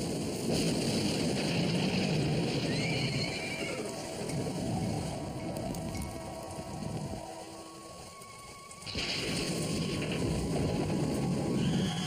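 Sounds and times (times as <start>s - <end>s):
wind and rain rumble: 0.0s - 12.0s.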